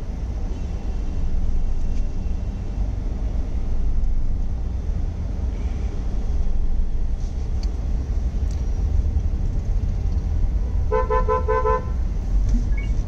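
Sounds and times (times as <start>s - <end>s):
road traffic rumble: 0.0s - 13.0s.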